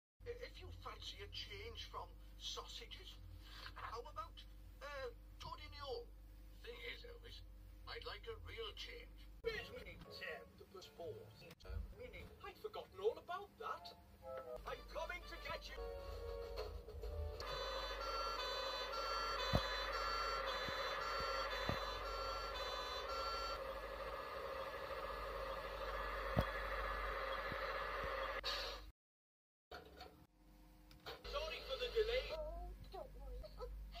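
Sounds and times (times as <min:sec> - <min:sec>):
cartoon two-tone siren: 0:17.4 - 0:24.0.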